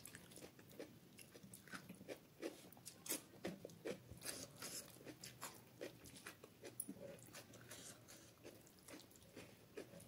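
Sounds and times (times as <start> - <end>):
chewing: 0.0 - 10.0.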